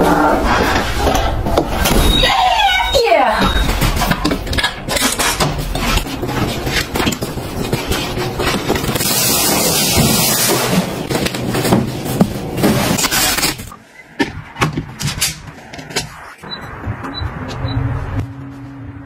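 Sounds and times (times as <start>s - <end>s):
handling household objects and cardboard: 0.0s - 16.4s.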